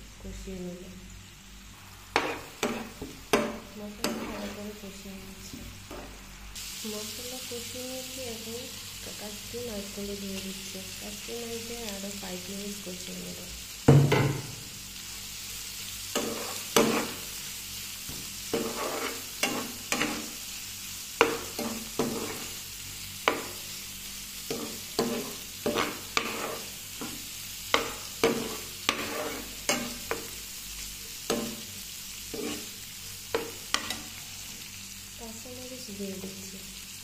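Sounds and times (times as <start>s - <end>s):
frying sizzle: 0.0s - 37.0s
metal spoon scraping a pan: 2.1s - 4.7s, 16.1s - 17.4s, 18.5s - 20.4s, 21.2s - 22.6s, 24.5s - 30.3s, 32.3s - 34.2s.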